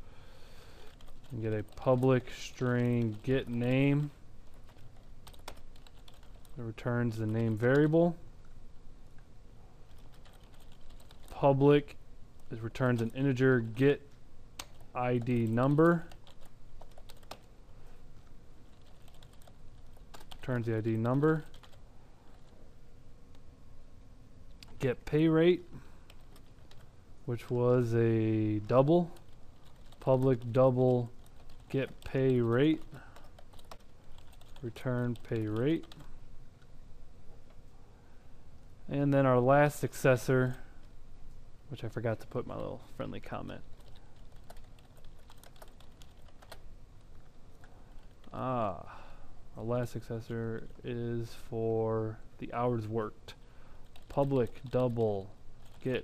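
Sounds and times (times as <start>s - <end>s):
computer keyboard typing: 0.8s - 6.6s, 9.9s - 11.4s, 14.6s - 17.5s, 18.6s - 22.6s, 26.1s - 26.9s, 29.1s - 36.1s, 43.7s - 46.6s, 53.8s - 55.0s, 55.6s - 56.0s.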